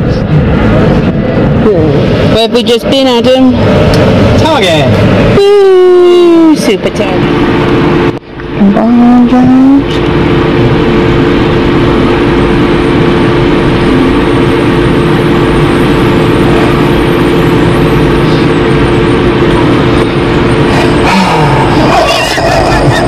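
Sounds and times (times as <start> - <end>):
vehicle idling drone: 0.0 - 23.0.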